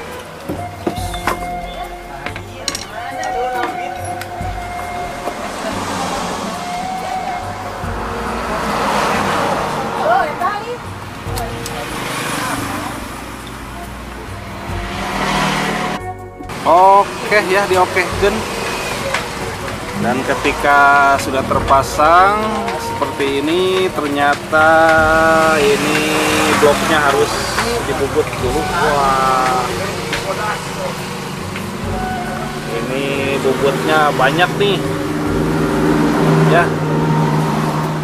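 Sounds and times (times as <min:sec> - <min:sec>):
traffic engine hum and road noise: 0:00.0 - 0:38.0.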